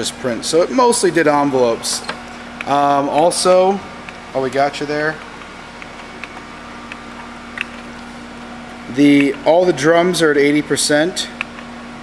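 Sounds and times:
digital press humming: 0.0 - 12.0.

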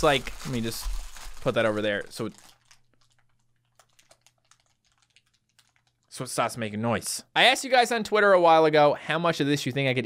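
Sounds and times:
crumpled plastic bag crackling: 0.0 - 6.2.

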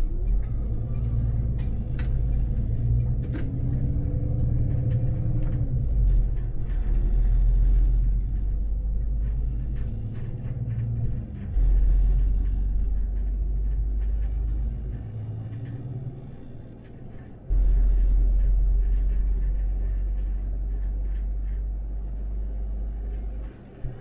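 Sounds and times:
bus drivetrain rumble: 0.0 - 24.0.

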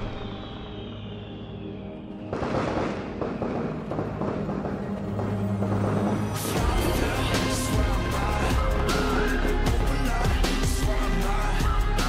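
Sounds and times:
rumbling crackling noise: 2.0 - 11.0.

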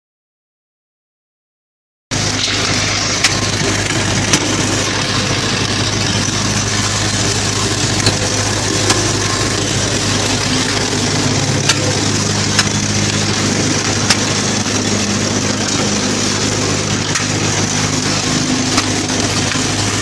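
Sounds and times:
concrete mixer running: 2.1 - 20.0
sharp clicks: 12.5 - 13.2.

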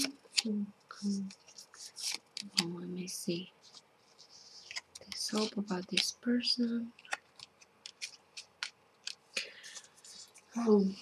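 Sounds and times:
cards clicking and flicking: 4.6 - 6.2, 6.9 - 10.1.

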